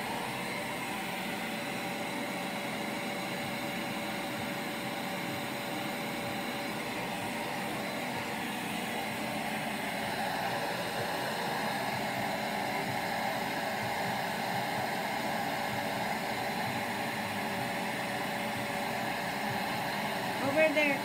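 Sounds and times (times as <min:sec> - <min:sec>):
stick vacuum running: 0:00.0 - 0:21.0.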